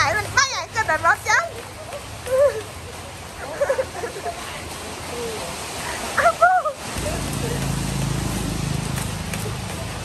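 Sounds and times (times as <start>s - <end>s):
rain hiss: 0.0s - 10.0s.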